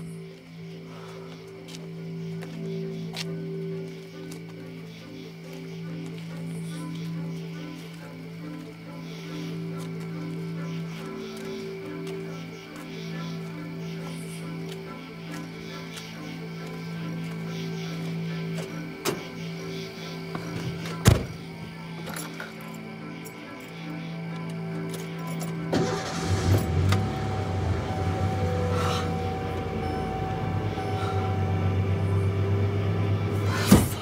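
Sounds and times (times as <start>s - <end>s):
droning film score: 0.0s - 34.0s
truck engine rumbling: 25.6s - 34.0s.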